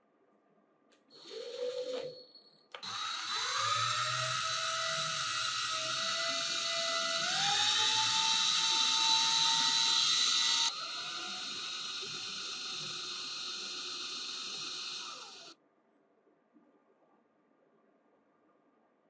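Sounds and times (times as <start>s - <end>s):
power drill motor whine: 2.8s - 15.6s.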